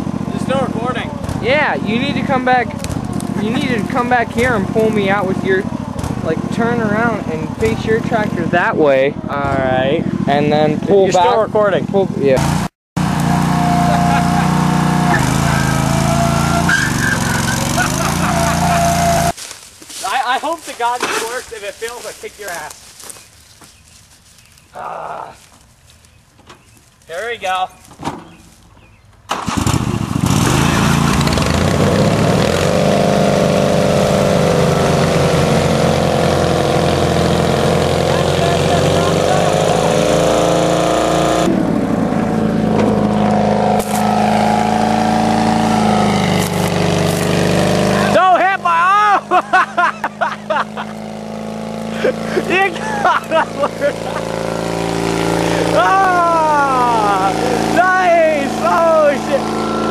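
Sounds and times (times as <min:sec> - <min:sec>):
garden tractor engine revving: 0:00.0 - 0:23.2, 0:29.3 - 0:59.9.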